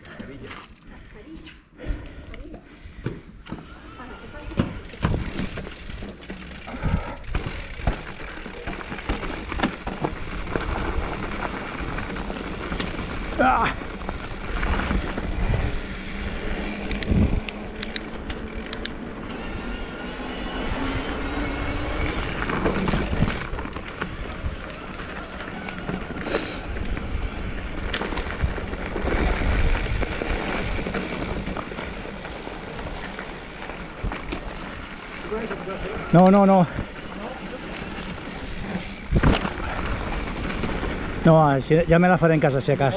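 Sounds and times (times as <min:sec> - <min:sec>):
bike tyres rumbling: 0:02.8 - 0:42.9
bike knocking and rattling: 0:02.9 - 0:19.5, 0:21.5 - 0:42.9.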